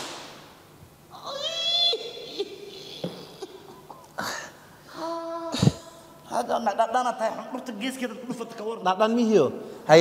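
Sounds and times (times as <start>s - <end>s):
man squealing: 1.1s - 3.9s.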